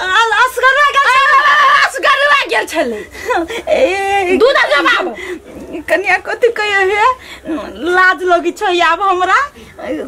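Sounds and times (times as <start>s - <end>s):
woman talking animatedly: 0.0s - 10.0s.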